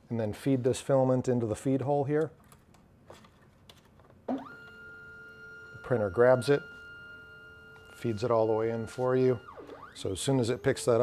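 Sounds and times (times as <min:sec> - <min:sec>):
motor whine: 0:04.3 - 0:11.0.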